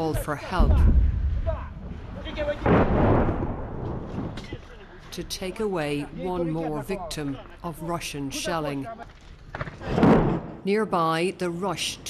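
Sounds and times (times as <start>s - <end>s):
artillery shell exploding: 0.8s - 4.6s, 9.8s - 10.6s.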